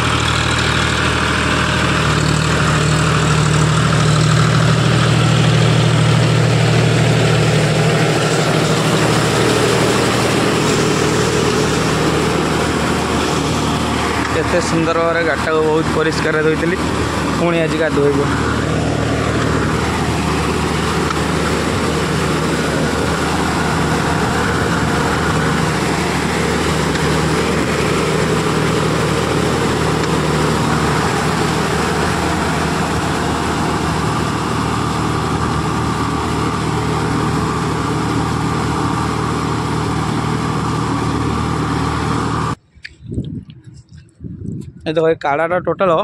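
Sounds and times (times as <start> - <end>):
tractor diesel engine running: 0.0 - 46.0.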